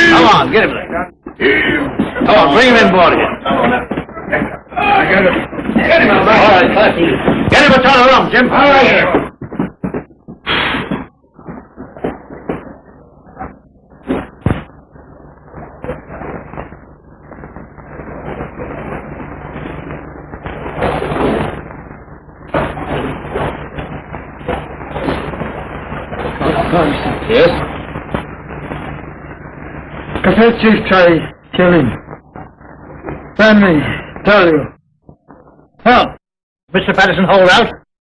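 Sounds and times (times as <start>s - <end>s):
indistinct voices: 0.0s - 36.2s
old film soundtrack hum: 0.0s - 37.8s.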